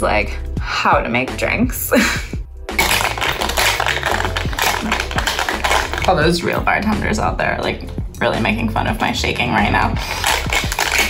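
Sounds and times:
background music with bass: 0.0s - 11.0s
cocktail shaker rattling: 2.8s - 6.6s, 10.0s - 11.0s.

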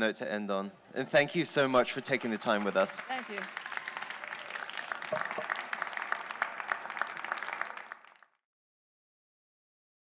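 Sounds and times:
audience applauding: 1.2s - 8.4s.

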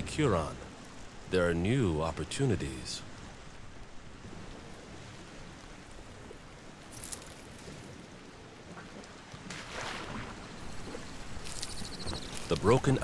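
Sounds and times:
lake water lapping: 4.0s - 13.0s.

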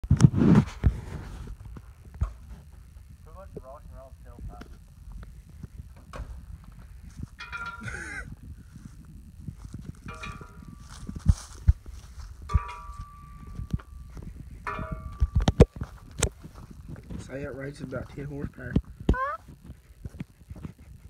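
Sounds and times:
steady low rumble: 0.3s - 21.0s
sharp knocks and clacks: 9.8s - 17.2s.

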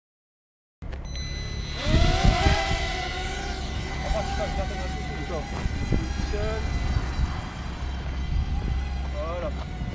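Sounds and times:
quadcopter motors whining: 1.1s - 9.9s
low rumbling prop wash: 1.8s - 9.9s.

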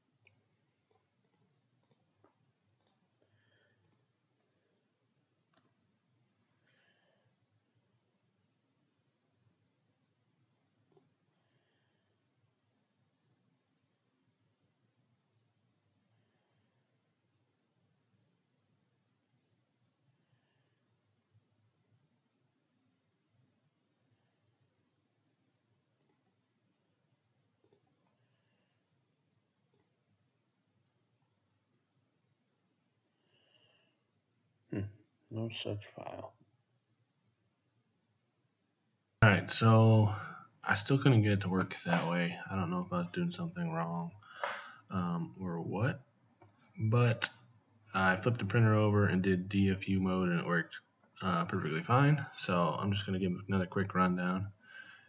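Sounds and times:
faint computer clicks: 3.8s - 4.1s, 27.6s - 27.9s.

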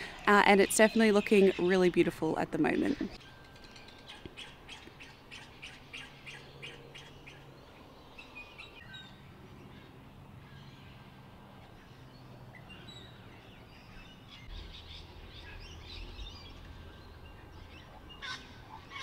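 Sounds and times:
birds chirping and calling: 0.0s - 19.0s
low steady rumble: 13.3s - 19.0s.

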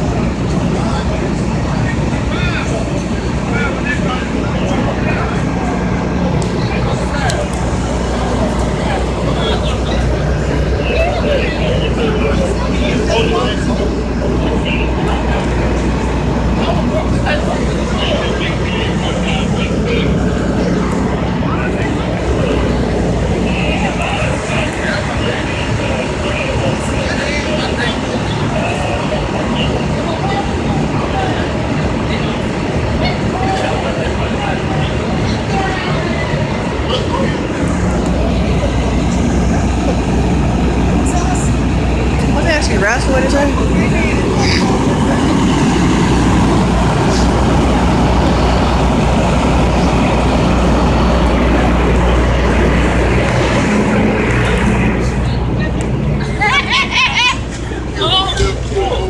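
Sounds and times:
idling engines low hum: 0.0s - 59.0s
people talking: 0.0s - 59.0s
street traffic: 0.0s - 59.0s.

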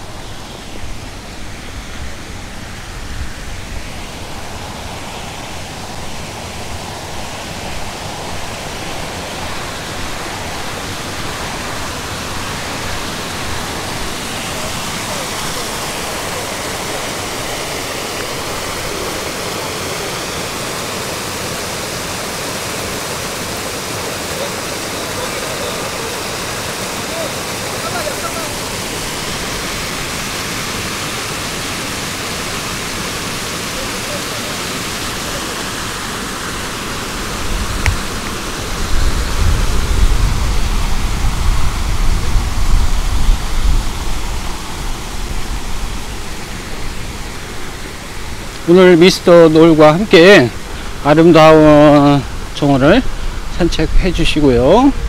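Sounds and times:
water rushing over rocks: 0.0s - 55.0s.

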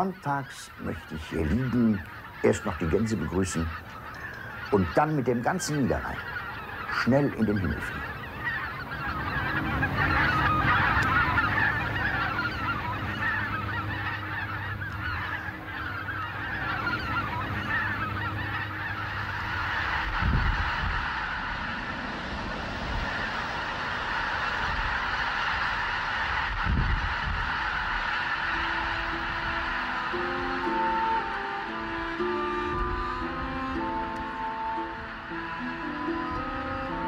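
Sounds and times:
geese honking: 0.0s - 37.0s
music: 7.9s - 20.4s, 28.0s - 37.0s.

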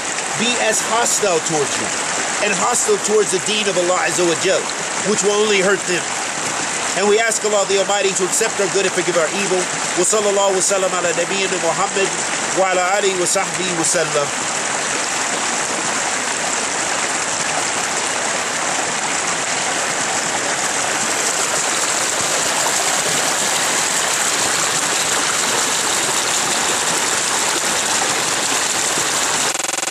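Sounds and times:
creek water rushing over rocks: 0.0s - 29.9s.

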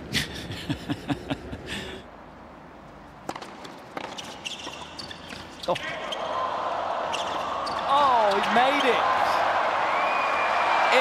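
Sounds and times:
man laughing: 0.1s - 2.0s
tennis ball hits: 3.2s - 5.4s
tennis ball bouncing: 3.2s - 6.2s.

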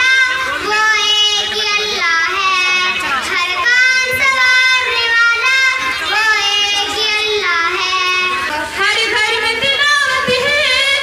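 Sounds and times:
girl singing into microphone: 0.0s - 11.0s.

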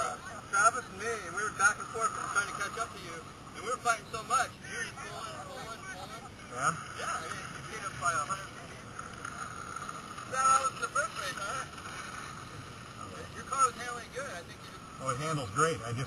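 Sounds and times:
people talking indistinctly: 0.0s - 16.0s
steady background hiss: 0.0s - 16.0s.

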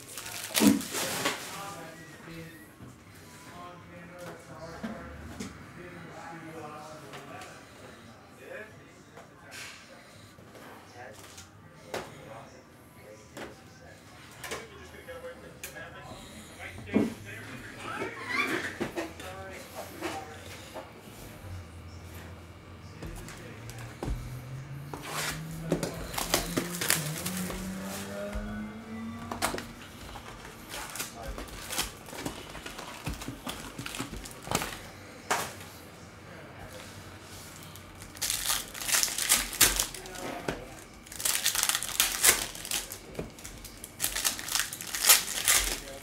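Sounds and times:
foil wrappers crinkling and tearing: 0.0s - 2.0s, 25.2s - 28.3s, 29.4s - 34.9s, 37.6s - 46.0s.

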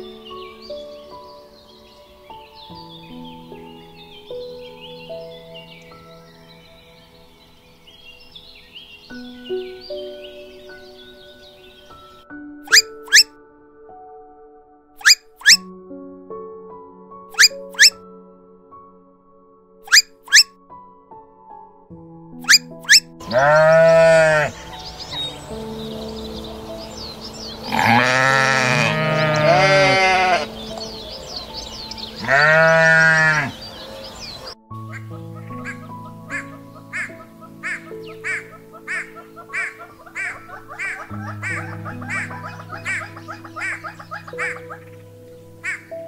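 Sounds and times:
soft piano music: 0.0s - 46.0s
farm animal bleating: 23.2s - 24.8s, 27.6s - 30.6s, 32.1s - 34.5s.

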